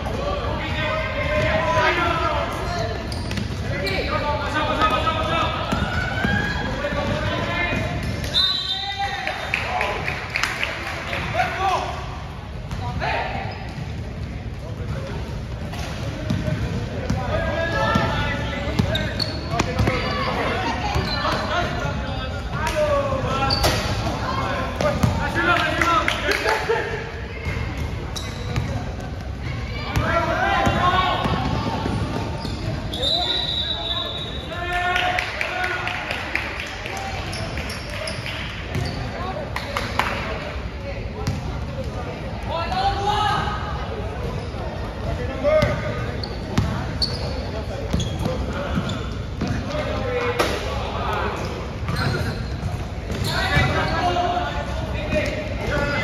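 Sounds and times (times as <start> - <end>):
murmur of players and spectators: 0.0 - 56.0
basketball bouncing on court floor: 24.8 - 25.2.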